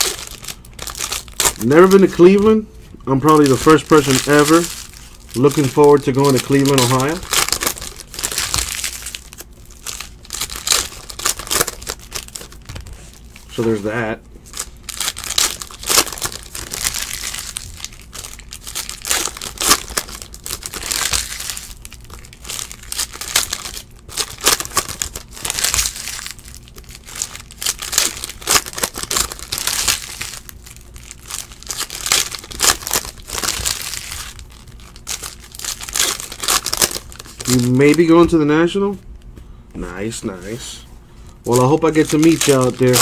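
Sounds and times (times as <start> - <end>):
foil wrappers crinkling and tearing: 0.0 - 38.8, 40.0 - 43.0.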